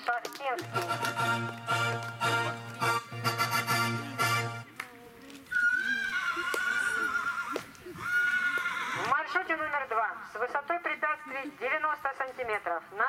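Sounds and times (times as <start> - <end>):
horse neighing: 5.6 - 9.2.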